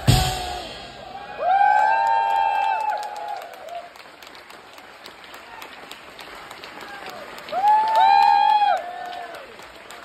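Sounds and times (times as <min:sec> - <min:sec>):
band hits: 0:00.0 - 0:01.0
audience applauding: 0:01.2 - 0:10.0.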